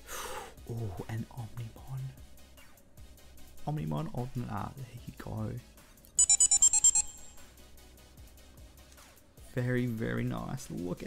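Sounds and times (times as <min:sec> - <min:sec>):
faint background music: 0:00.0 - 0:11.0
high electronic beep: 0:06.2 - 0:07.5.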